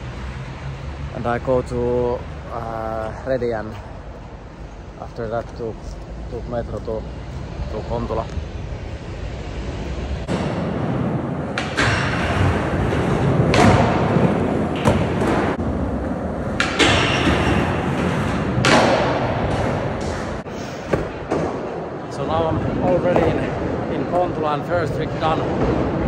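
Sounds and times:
skateboard wheels rolling and grinding: 8.4s - 24.0s.

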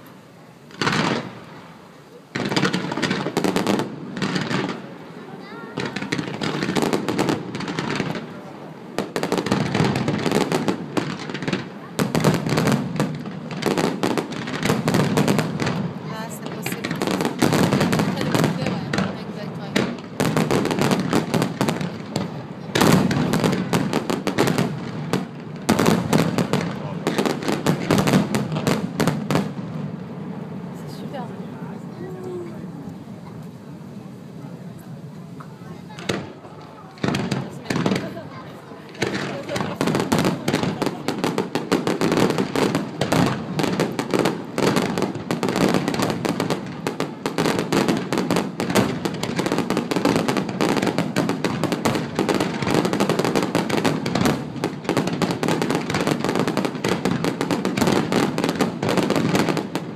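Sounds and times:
fireworks bursting in bangs and pops: 0.0s - 59.9s.

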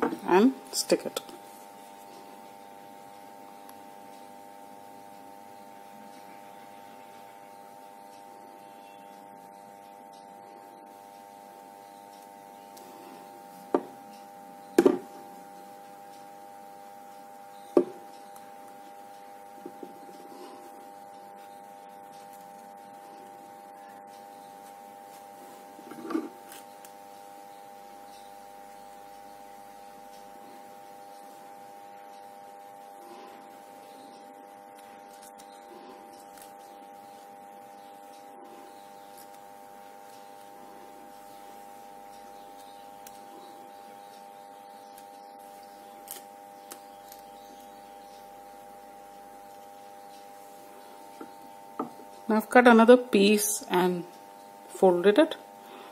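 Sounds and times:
faint steady hum: 0.0s - 55.9s.

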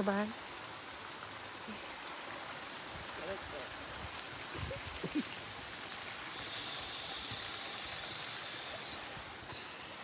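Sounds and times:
running water rushing: 0.0s - 10.0s.

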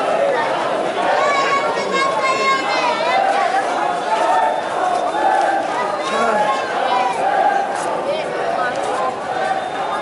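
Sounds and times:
crowd talking and calling out: 0.0s - 10.0s.

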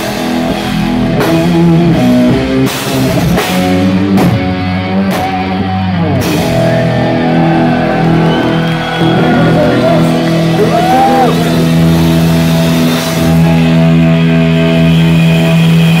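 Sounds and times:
distorted electric guitars: 0.0s - 16.0s
guitar pitch glide: 0.0s - 16.0s.

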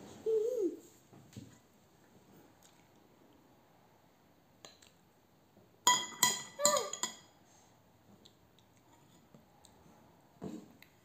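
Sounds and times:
spoon clinking against bowl: 5.9s - 7.3s.

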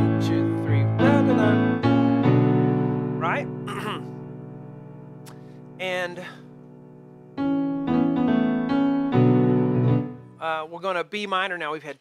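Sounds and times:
digital piano chords: 0.0s - 11.4s.

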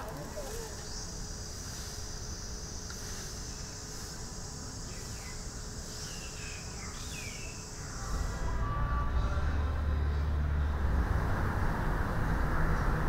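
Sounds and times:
high-pitched insect drone: 0.3s - 10.7s.

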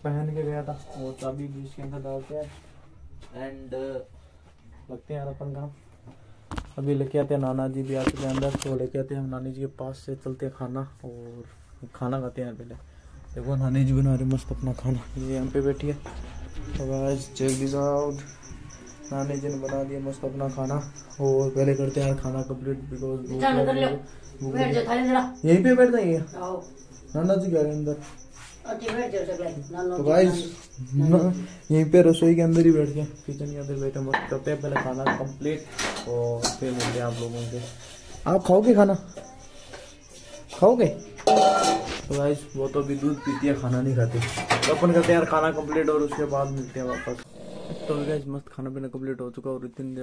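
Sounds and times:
cricket chirping: 0.0s - 50.0s.

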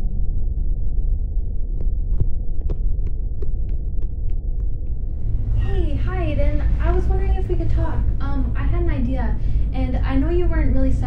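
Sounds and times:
loud low throbbing drone: 0.0s - 11.0s.

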